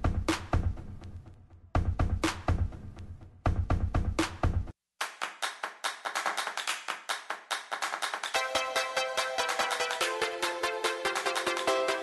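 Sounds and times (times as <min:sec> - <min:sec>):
electronic music with fast drum hits: 0:00.0 - 0:01.2, 0:01.8 - 0:04.7.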